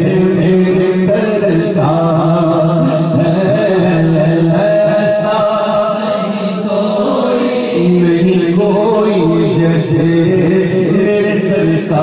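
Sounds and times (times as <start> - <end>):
men singing unaccompanied: 0.0 - 12.0.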